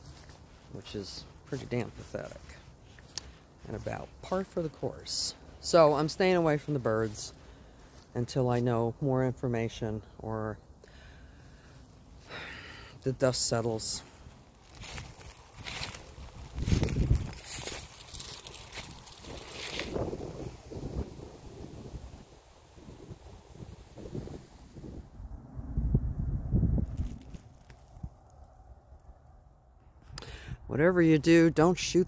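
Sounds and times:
rustling and handling noise: 0:14.0 - 0:20.6
wind buffeting microphone: 0:14.8 - 0:28.3.

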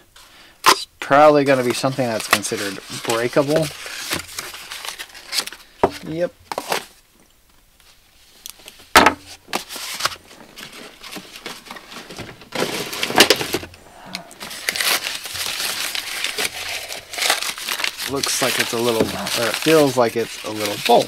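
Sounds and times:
paper crinkling and rustling: 0:01.5 - 0:07.0, 0:08.6 - 0:21.0
sharp paper crack: 0:09.5 - 0:21.0.

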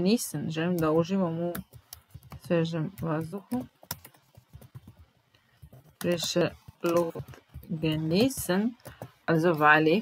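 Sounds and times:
computer keyboard key clicks: 0:03.5 - 0:05.0.

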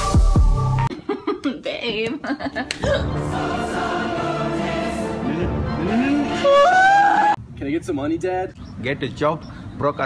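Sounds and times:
choir sustained chord: 0:03.0 - 0:06.5.

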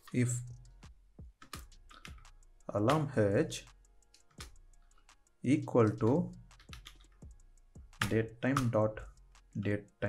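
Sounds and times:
computer keyboard keystrokes: 0:01.4 - 0:02.3, 0:05.8 - 0:07.2, 0:07.9 - 0:08.8.

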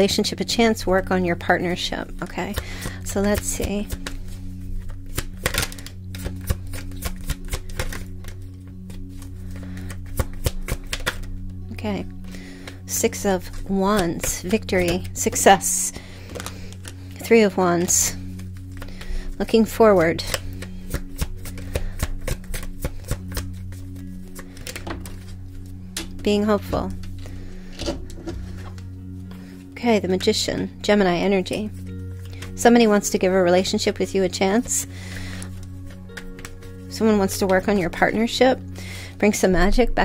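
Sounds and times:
soft background music: 0:00.0 - 0:40.0
steady low drone: 0:00.0 - 0:40.0
cards being shuffled: 0:02.5 - 0:11.6, 0:12.3 - 0:26.2, 0:31.7 - 0:37.8.

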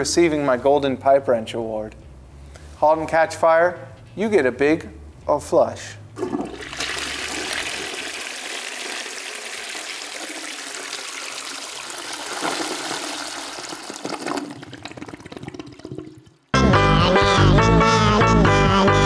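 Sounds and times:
toilet flushing: 0:06.2 - 0:16.5
lively music: 0:16.6 - 0:19.0.

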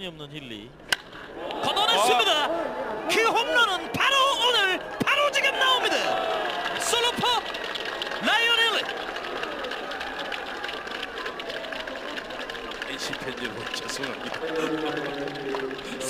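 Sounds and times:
stadium background noise: 0:00.0 - 0:16.0.

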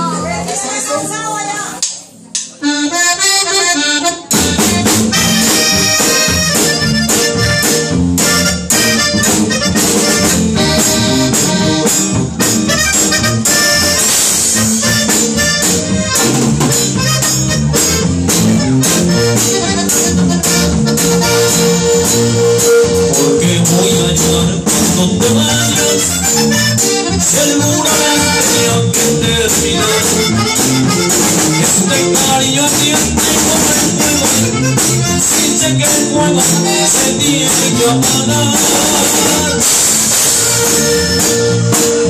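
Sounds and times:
acoustic guitar: 0:00.0 - 0:42.0
electric bass: 0:00.0 - 0:42.0
piano accordion: 0:02.6 - 0:42.0
drum kit: 0:03.2 - 0:42.0.

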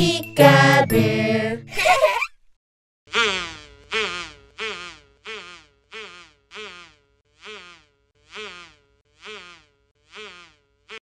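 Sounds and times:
cartoon bug buzzing: 0:03.1 - 0:11.0.

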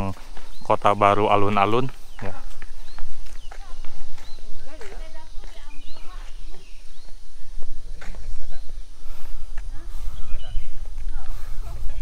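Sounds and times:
bird chirps: 0:00.0 - 0:11.7
footsteps on asphalt: 0:00.0 - 0:12.0
steady low rumble: 0:00.0 - 0:12.0.

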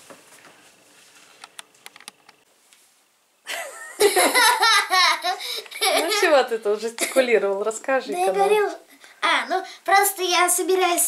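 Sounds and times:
boy laughing loudly: 0:03.5 - 0:06.3.

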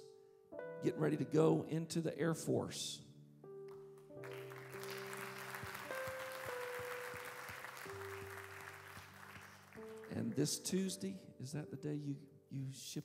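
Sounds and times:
soft keyboard chords: 0:00.0 - 0:13.0
congregation applauding: 0:04.2 - 0:10.7.

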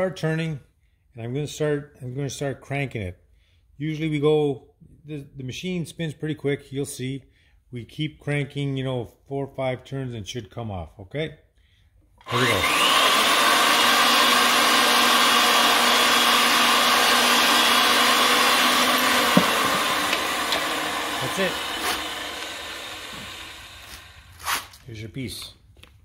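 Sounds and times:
pipe threading machine running: 0:12.2 - 0:24.5
pipe cutter cutting pipe: 0:12.2 - 0:24.8.

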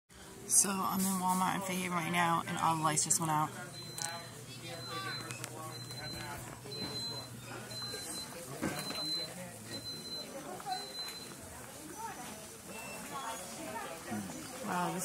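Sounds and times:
murmur of voices: 0:00.2 - 0:15.0
high-pitched electronic alarm beeping: 0:03.7 - 0:11.4.

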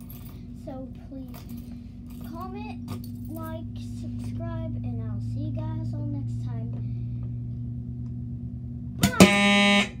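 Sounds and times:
steady low hum: 0:00.0 - 0:10.0
fire alarm horn buzz: 0:09.0 - 0:10.0.

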